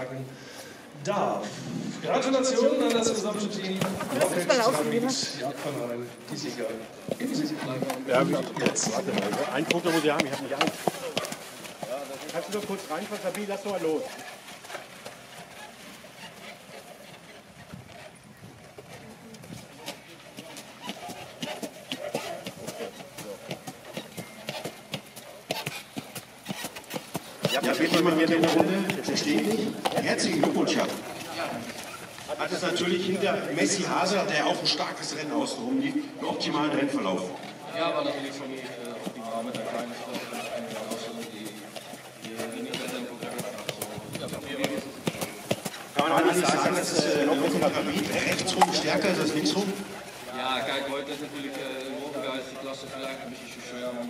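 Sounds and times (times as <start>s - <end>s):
people talking: 1.0s - 11.2s, 27.4s - 45.4s, 46.0s - 54.0s
horse hooves clicking on paving: 2.6s - 35.6s, 36.3s - 54.0s.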